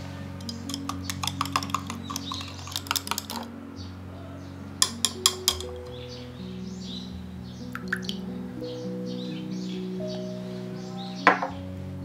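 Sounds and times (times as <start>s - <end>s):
wire whisk clinking against glass: 0.4s - 3.5s, 4.8s - 5.8s.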